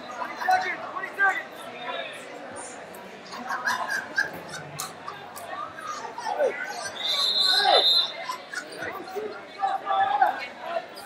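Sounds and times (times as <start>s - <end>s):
hall chatter: 0.0s - 11.0s.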